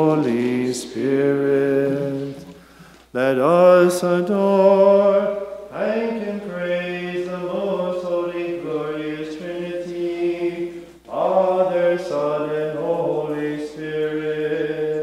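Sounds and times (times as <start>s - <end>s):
man chanting unaccompanied: 3.2s - 15.0s.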